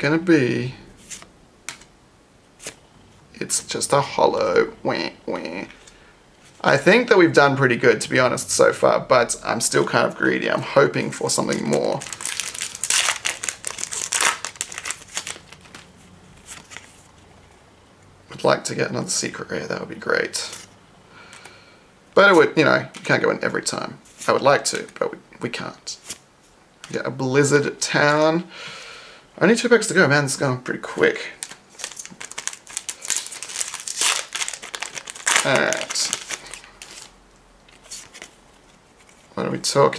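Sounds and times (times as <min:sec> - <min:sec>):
foil wrapper tearing and crinkling: 0:11.6 - 0:15.9, 0:31.4 - 0:37.2.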